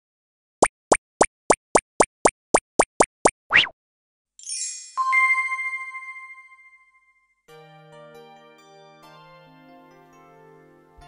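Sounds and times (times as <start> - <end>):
cartoon pops sliding up in pitch: 0.6 - 3.8
cartoon sliding sound: 3.5 - 3.7.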